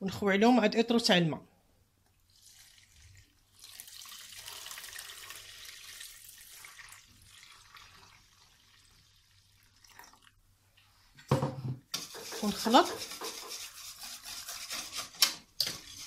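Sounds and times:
water pouring into metal bowl: 2.3 - 10.4.

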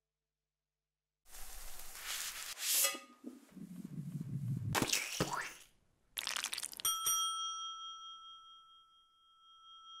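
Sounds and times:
bell-like ding: 6.8 - 10.0.

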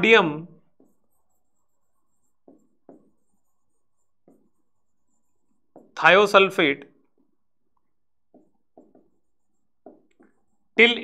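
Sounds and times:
stylus tapping on screen: 0.6 - 10.8.

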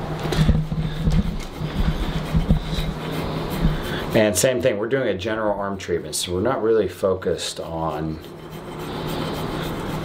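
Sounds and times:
steady low hum: 0.0 - 10.0
metal tool scraping over skin: 0.6 - 4.4, 7.2 - 10.0.

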